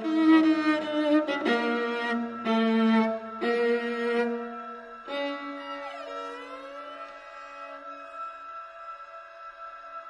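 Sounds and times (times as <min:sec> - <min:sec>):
bowed strings holding long notes: 0:00.0 - 0:10.0.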